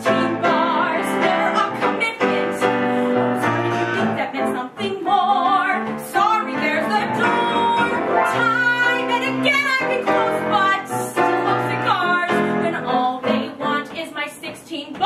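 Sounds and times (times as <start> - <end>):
piano accompaniment: 0.0 - 15.0
woman singing with vibrato: 0.0 - 15.0.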